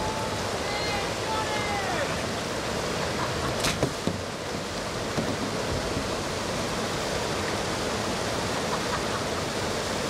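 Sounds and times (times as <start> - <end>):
river rapids rushing: 0.0 - 10.0.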